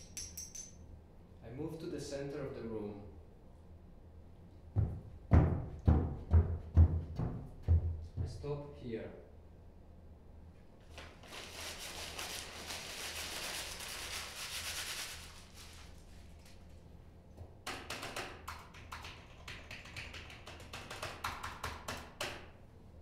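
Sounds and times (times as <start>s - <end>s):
paper rustling: 10.9s - 16.6s.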